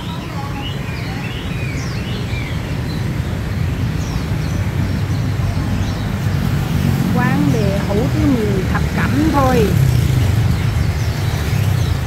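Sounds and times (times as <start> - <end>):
bird chirps: 0.0 - 12.0
motorbike and car traffic passing: 0.0 - 12.0.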